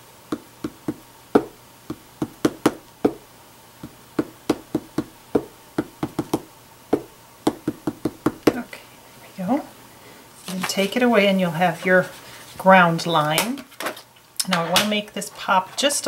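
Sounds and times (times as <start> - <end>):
rubber stamp tapping on paper: 0.3 - 3.2, 3.8 - 8.6.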